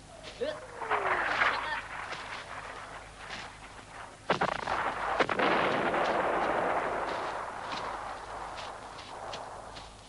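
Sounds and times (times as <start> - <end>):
dense rumbling noise: 0.0 - 10.0
sharp bangs: 0.0 - 10.0.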